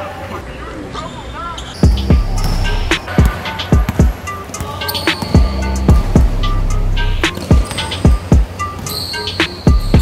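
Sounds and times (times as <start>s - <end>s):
basketball bouncing on court: 1.8s - 6.4s, 7.2s - 9.1s.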